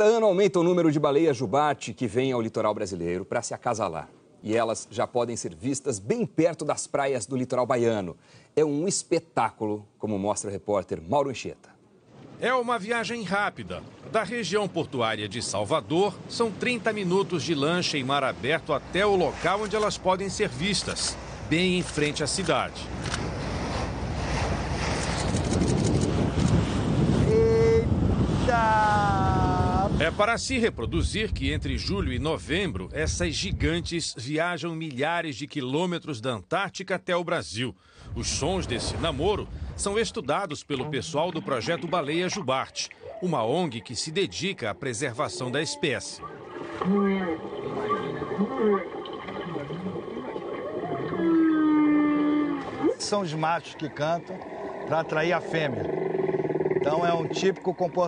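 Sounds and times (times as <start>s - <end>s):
wind: 0.0s - 58.0s
water noise: 11.9s - 34.1s, 38.2s - 58.0s
whale song moans through speaker: 46.8s - 53.0s
falling vocal cry: 50.6s - 53.0s.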